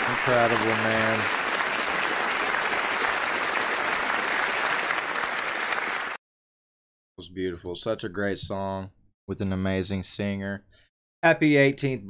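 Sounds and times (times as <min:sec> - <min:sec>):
large audience applauding: 0:00.0 - 0:06.2.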